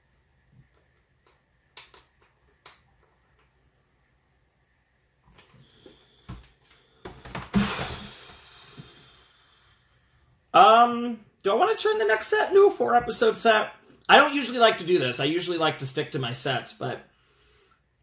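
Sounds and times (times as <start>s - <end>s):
breathy exhale through lips: 5.5s - 10.2s.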